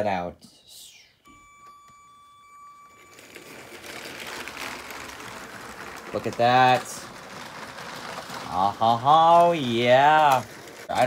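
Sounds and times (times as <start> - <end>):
toy train motor and wheels rattling: 3.0 - 11.0.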